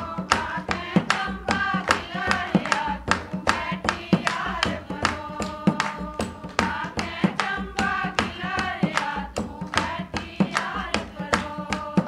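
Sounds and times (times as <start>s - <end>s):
dholak drum beat: 0.0s - 12.0s
hand clapping: 0.0s - 12.0s
women singing a folk song: 0.0s - 12.0s.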